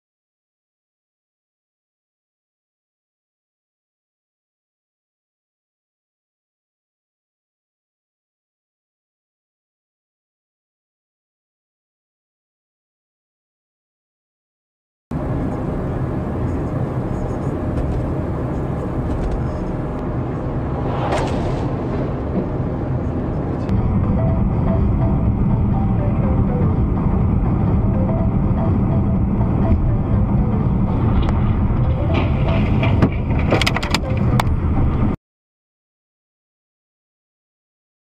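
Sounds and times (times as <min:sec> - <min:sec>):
car road and engine noise: 0:15.1 - 0:35.2
brief whoosh: 0:20.4 - 0:23.8.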